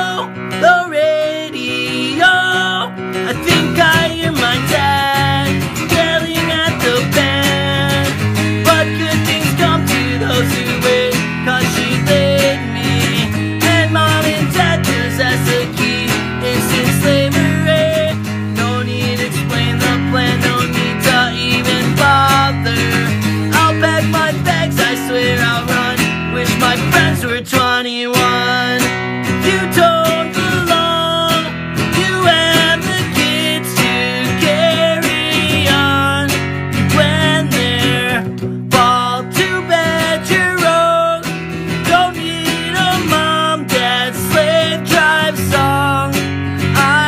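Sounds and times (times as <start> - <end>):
acoustic guitar strumming: 0.0 - 47.0
man singing: 0.0 - 47.0.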